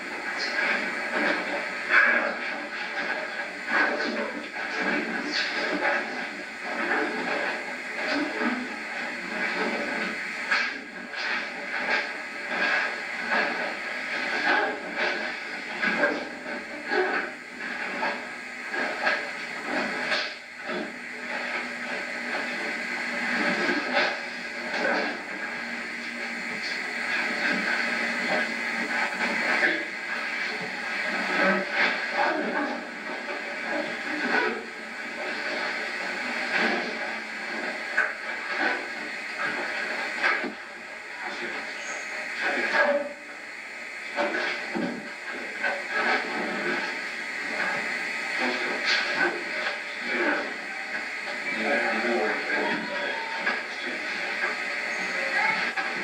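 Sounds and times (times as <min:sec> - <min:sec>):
muffled voices: 0:00.0 - 0:56.0
steady hiss: 0:00.0 - 0:56.0.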